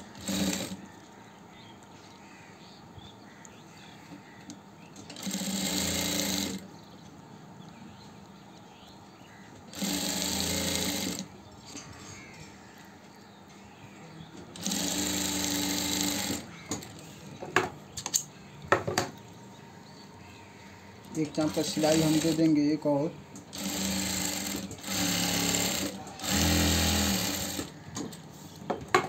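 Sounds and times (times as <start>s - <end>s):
sewing machine stitching: 0.0s - 0.8s, 5.1s - 6.6s, 9.7s - 11.3s, 14.6s - 16.5s, 21.3s - 22.6s, 23.5s - 27.8s
sharp clicks: 18.0s - 18.7s.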